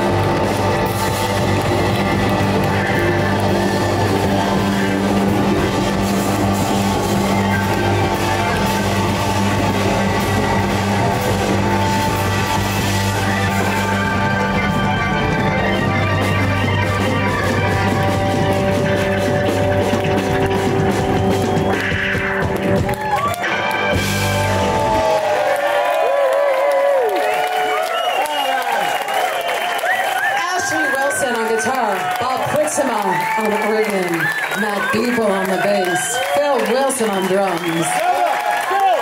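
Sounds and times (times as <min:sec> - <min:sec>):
blues-rock band playing: 0:00.0 - 0:26.0, 0:29.8 - 0:38.7
crowd cheering and whooping: 0:00.0 - 0:39.0.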